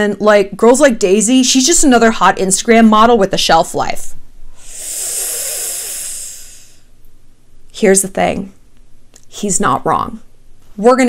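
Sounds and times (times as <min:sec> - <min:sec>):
woman's hissing breath through teeth: 0:04.6 - 0:06.9.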